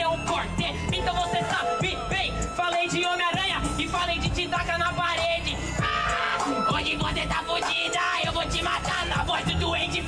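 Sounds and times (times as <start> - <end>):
rapping over a beat: 0.0 - 10.0.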